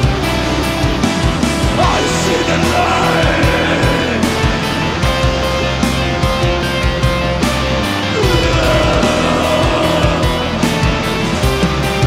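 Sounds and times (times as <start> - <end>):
distorted electric guitars: 0.0 - 12.0
drums: 0.0 - 12.0.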